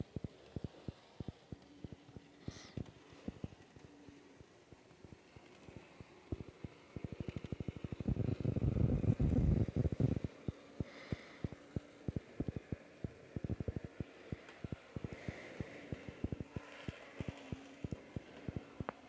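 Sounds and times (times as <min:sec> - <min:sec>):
model train clicking on track: 0:00.0 - 0:19.0.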